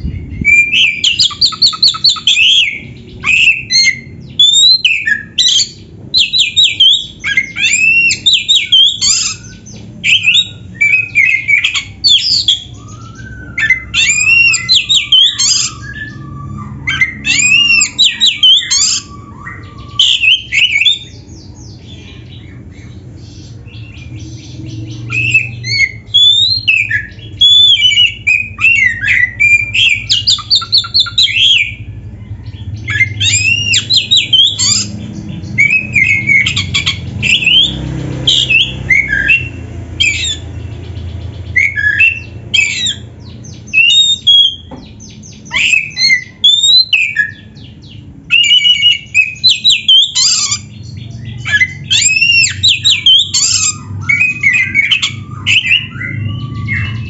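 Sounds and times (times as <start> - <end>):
low background rumble: 0.0 - 57.0
songbird whistling varied phrases: 0.4 - 21.1, 25.1 - 31.8, 32.9 - 35.0, 43.7 - 44.7, 45.5 - 47.7.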